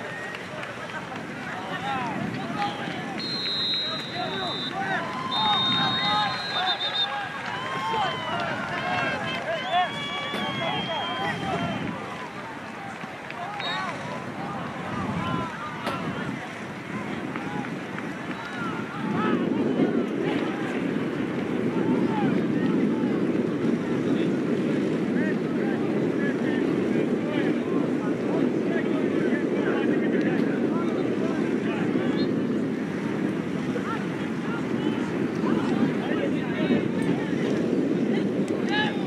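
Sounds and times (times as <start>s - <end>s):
distant voices shouting and talking: 0.0s - 20.9s
wind rumbling on microphone: 0.0s - 39.0s.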